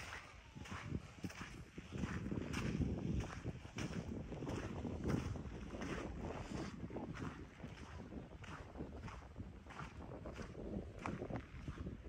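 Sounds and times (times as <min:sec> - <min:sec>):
footsteps on sand and gravel: 0:00.0 - 0:12.0
wind buffeting microphone: 0:00.0 - 0:12.0.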